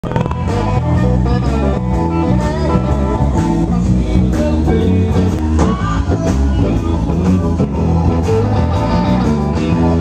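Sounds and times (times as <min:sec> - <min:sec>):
bass line: 0:00.0 - 0:10.0
blues band playing: 0:00.0 - 0:10.0
electric guitar: 0:00.0 - 0:10.0.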